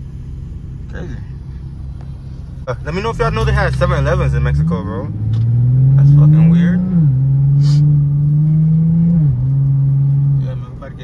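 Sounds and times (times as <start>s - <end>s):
car engine accelerating: 0.0s - 11.0s.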